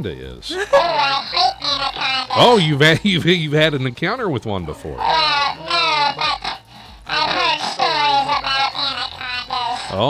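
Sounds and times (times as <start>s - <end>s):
comic voice babbling nonsense: 0.5s - 3.1s, 4.6s - 10.0s.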